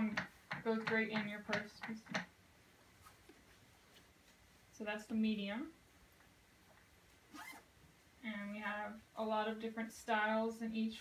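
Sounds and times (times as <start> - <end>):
pouch zipper zipping: 7.3 - 7.7.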